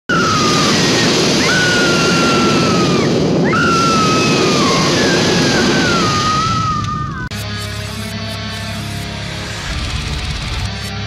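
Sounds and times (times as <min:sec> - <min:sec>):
flamethrower flames roaring: 0:00.1 - 0:07.2
woman screaming: 0:00.1 - 0:07.3.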